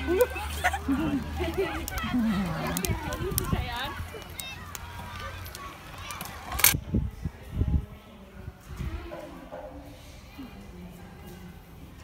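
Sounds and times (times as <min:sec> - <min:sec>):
faint voices: 0:00.0 - 0:12.0
wind rumble on microphone: 0:02.1 - 0:04.0, 0:06.8 - 0:09.2.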